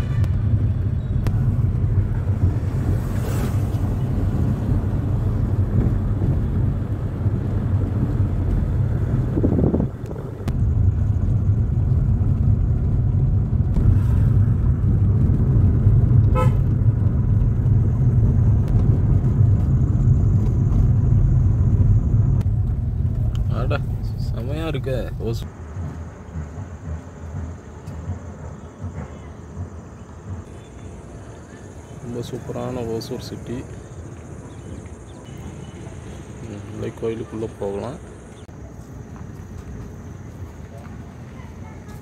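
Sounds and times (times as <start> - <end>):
engine and road noise rumble: 0.0 - 42.0.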